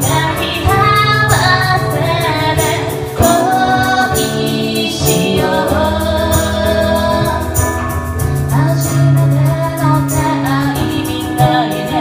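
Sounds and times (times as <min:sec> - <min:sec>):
acoustic guitar: 0:00.0 - 0:12.0
electric keyboard: 0:00.0 - 0:12.0
woman singing: 0:00.0 - 0:12.0.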